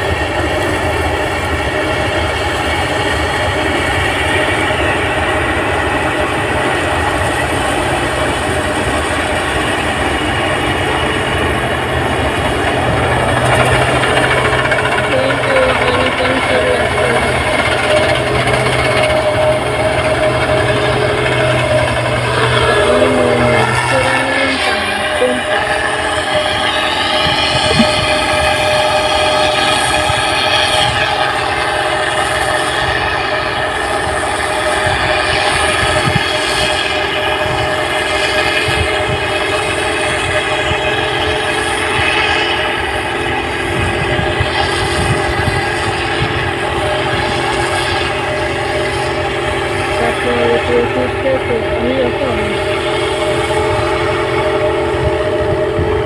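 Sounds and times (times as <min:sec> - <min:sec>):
combine harvester drone: 0:00.0 - 0:56.0.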